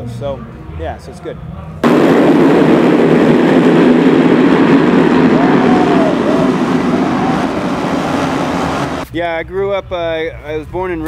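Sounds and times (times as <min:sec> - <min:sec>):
motocross bikes at full throttle: 0:01.9 - 0:09.0.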